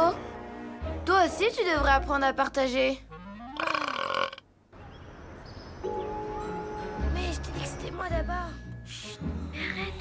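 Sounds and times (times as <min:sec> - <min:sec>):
cartoon dog burping: 0:03.6 - 0:04.4.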